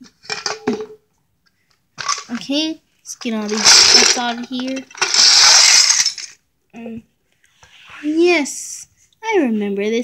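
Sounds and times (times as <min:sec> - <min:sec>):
child's wordless vocal sounds: 0:07.7 - 0:08.9.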